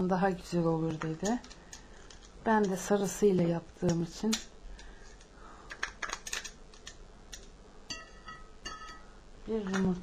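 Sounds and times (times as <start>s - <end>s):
clink against glass bowl: 7.9s - 9.0s.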